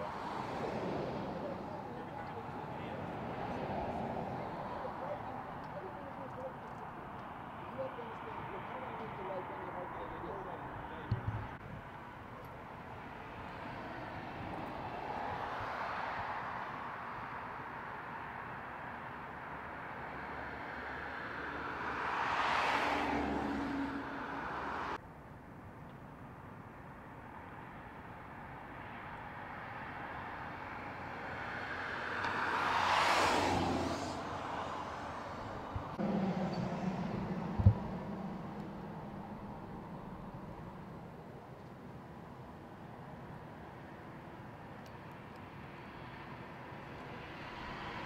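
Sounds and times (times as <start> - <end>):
passing vehicle rushing: 0.0 - 9.8, 20.4 - 25.0, 30.7 - 41.5
low steady engine hum: 34.0 - 48.0
sharp loud thump: 35.8 - 40.4.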